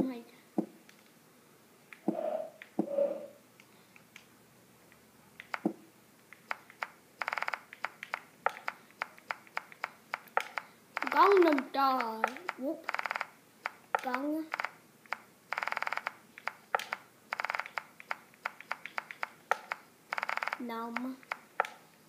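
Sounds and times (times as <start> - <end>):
sharp clicks: 4.9 - 21.9.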